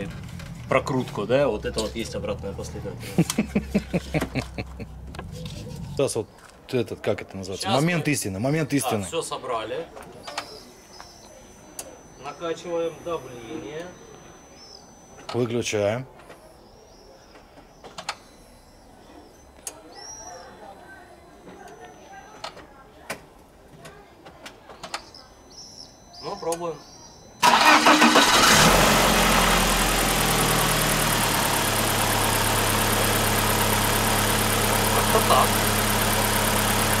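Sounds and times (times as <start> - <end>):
car engine starting and idling: 0.0 - 6.2, 27.4 - 37.0.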